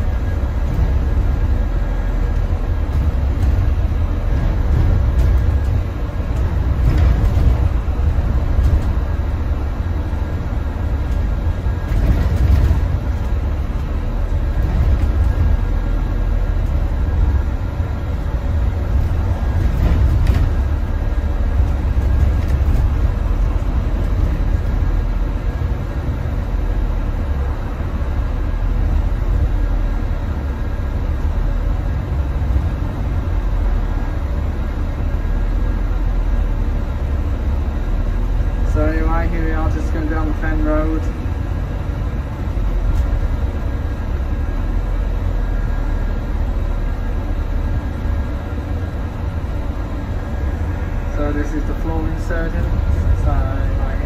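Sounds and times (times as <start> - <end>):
bus engine and road rumble: 0.0 - 54.0.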